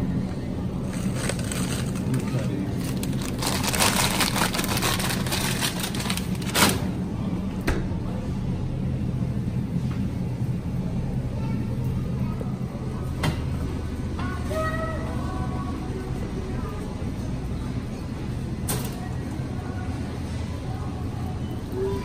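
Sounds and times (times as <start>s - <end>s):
low store hum: 0.0s - 22.0s
rattling crinkling handling noise: 0.8s - 6.9s.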